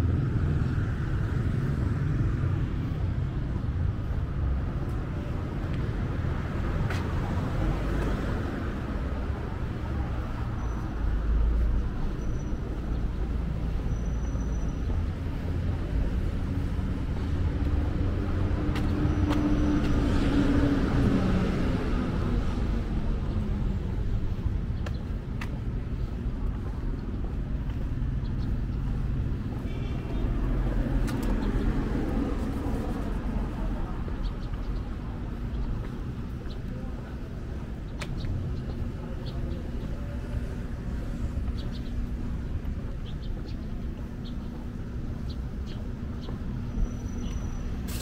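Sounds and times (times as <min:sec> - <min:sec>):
rumble of traffic: 0:00.0 - 0:48.0.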